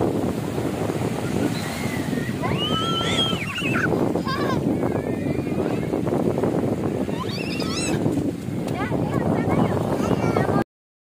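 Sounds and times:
small waves on sandy shore: 0.0s - 10.6s
wind buffeting microphone: 0.0s - 10.6s.

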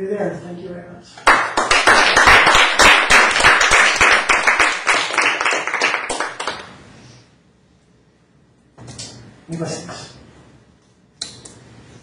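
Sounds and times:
audience applauding: 1.2s - 6.7s.

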